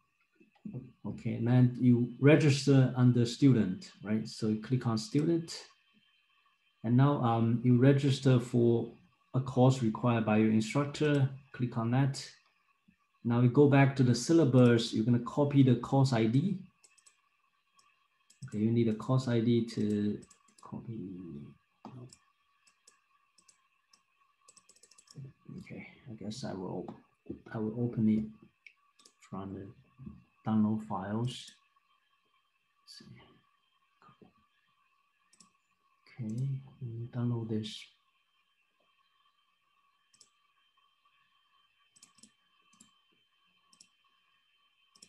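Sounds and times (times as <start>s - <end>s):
faint computer mouse clicks: 16.8s - 18.6s, 19.8s - 20.7s, 21.9s - 25.3s, 28.6s - 29.2s, 35.3s - 35.6s, 36.2s - 36.5s, 40.1s - 40.4s, 41.9s - 43.0s, 43.7s - 44.0s.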